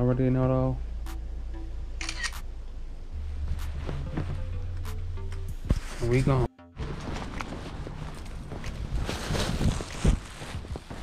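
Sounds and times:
background music with low bass: 0.0 - 9.8
phone camera shutter click: 2.0 - 2.4.

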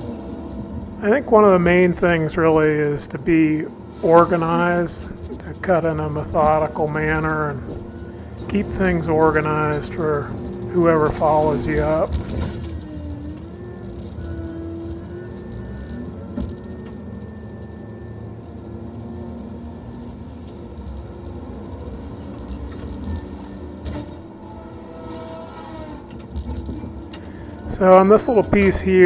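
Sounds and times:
diesel engine droning: 0.0 - 29.0
hydraulic whine: 0.0 - 29.0.

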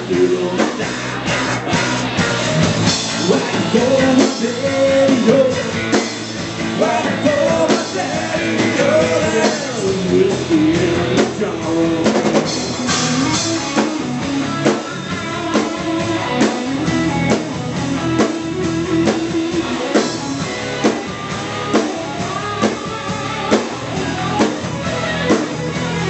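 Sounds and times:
bass guitar: 0.0 - 26.0
distorted electric guitars: 0.0 - 26.0
drum kit beat: 0.0 - 26.0.

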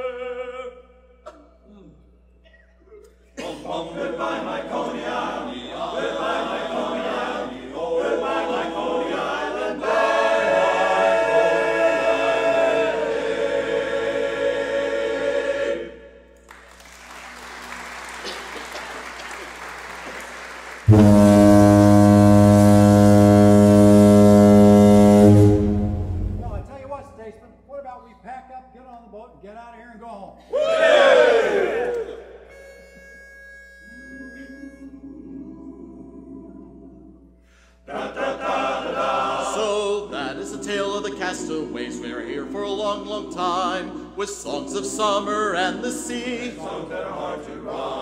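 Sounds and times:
male chorus singing in harmony: 3.4 - 16.3, 34.4 - 48.0
loud low horn blast: 20.8 - 27.2.

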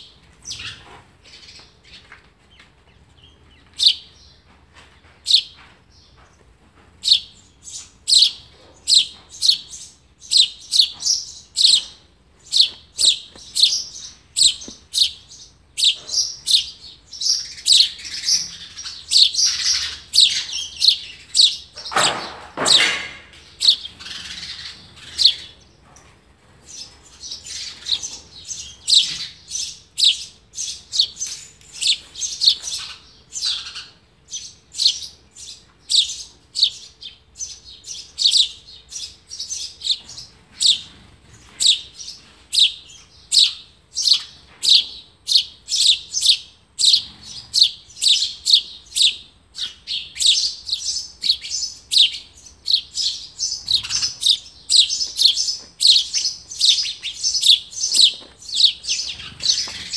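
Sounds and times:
sparrow nestlings chirping: 0.0 - 6.2, 7.0 - 59.9.

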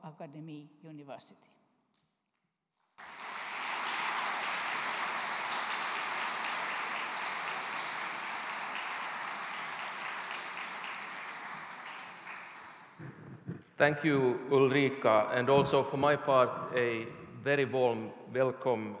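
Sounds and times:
audience applauding: 3.0 - 13.5.

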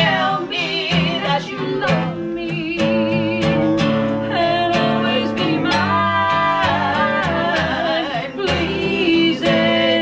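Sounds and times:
strummed acoustic guitar: 0.0 - 10.0
voices singing in harmony: 0.0 - 10.0.

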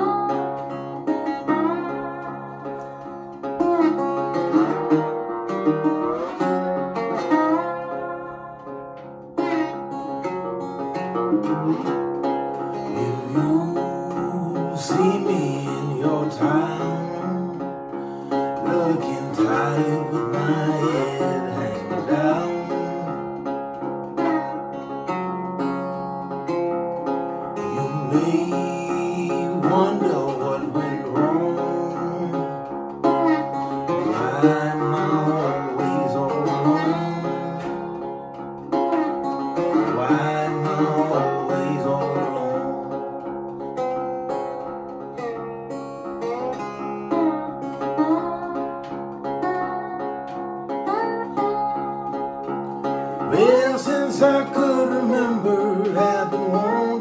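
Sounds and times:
slide resonator guitar blues: 0.0 - 57.0.

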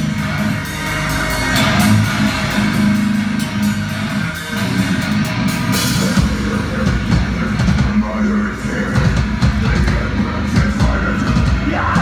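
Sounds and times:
heavy rock band playing live: 0.0 - 12.0.

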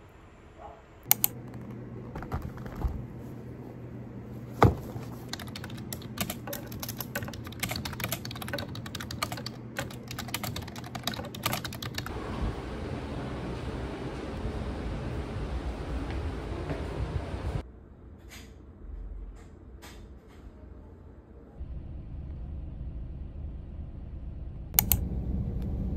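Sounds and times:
steady low hum: 0.0 - 25.9
keyboard key clicks: 1.1 - 1.6, 24.8 - 25.0.

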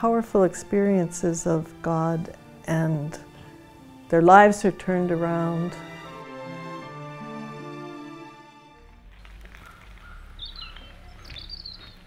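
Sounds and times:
songbirds chirping: 0.2 - 12.0
low outdoor rumble: 8.7 - 12.0.

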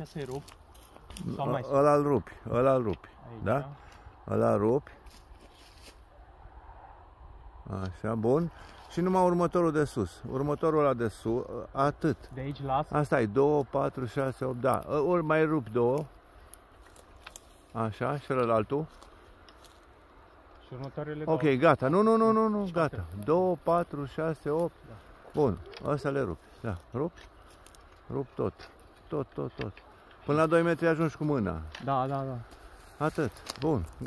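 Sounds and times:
man's voice: 33.0 - 34.0.

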